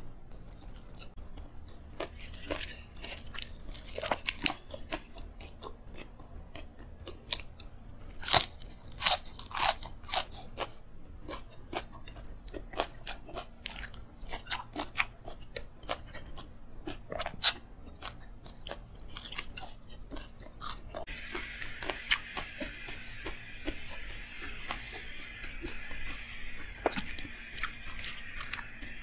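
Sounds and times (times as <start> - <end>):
chewing and crunching food: 0.1 - 29.0.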